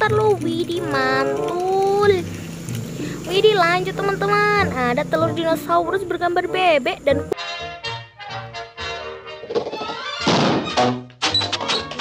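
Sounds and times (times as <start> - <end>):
outboard motor backfiring: 0.0 - 7.4
orchestral cartoon music: 6.6 - 12.0.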